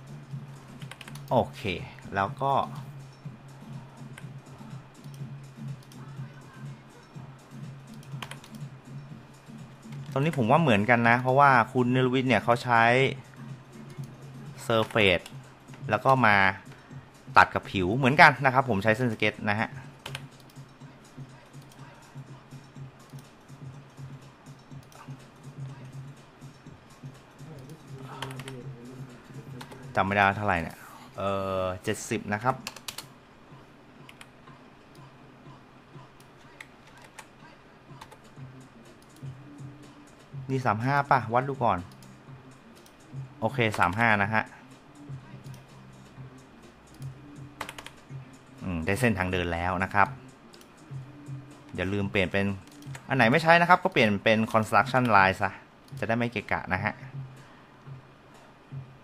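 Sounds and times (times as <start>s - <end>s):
computer keyboard clicks: 0.8s - 1.3s, 8.0s - 8.6s, 20.0s - 20.6s, 32.6s - 33.1s, 46.9s - 48.0s
keyboard and mouse clicks: 0.8s - 1.4s, 7.9s - 8.7s, 9.8s - 10.5s, 14.8s - 16.8s, 20.0s - 20.7s, 27.5s - 28.6s, 29.6s - 29.9s, 32.5s - 33.1s, 34.0s - 34.3s, 36.2s - 37.3s, 43.6s - 44.0s, 46.9s - 48.0s, 52.6s - 53.1s.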